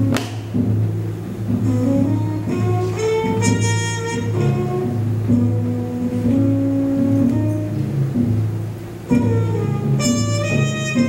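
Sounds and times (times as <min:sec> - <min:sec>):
low mellow horn notes: 0:00.0 - 0:11.0.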